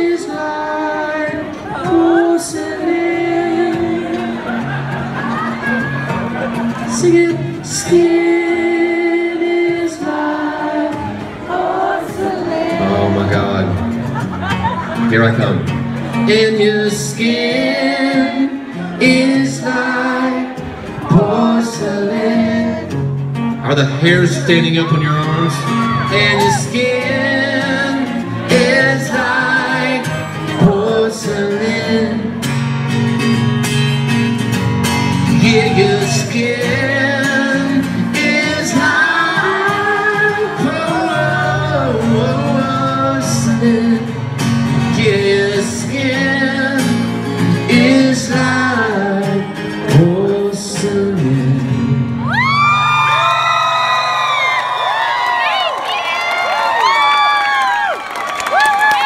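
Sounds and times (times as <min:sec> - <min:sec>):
man singing: 0:00.0 - 0:04.8, 0:06.7 - 0:11.2, 0:12.1 - 0:13.8, 0:16.1 - 0:32.5, 0:35.2 - 0:52.1
audience singing along: 0:00.0 - 0:15.0, 0:15.9 - 0:23.3, 0:25.0 - 0:32.8, 0:35.0 - 0:52.0
acoustic guitar: 0:00.0 - 0:55.6
crowd cheering and whooping: 0:01.5 - 0:08.2, 0:24.4 - 0:30.7, 0:35.0 - 0:44.0, 0:52.1 - 0:59.0.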